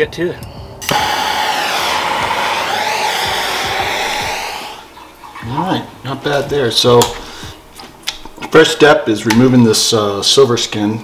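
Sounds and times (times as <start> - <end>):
gas torch roaring: 0.8 - 5.2.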